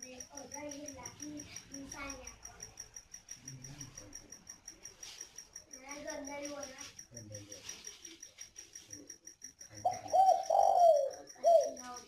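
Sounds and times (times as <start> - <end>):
dove cooing: 9.7 - 12.0.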